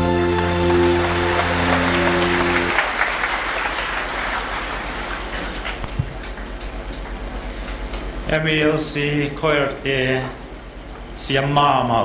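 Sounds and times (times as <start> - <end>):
held closing music chord: 0.0 - 2.8
audience applause: 0.0 - 8.3.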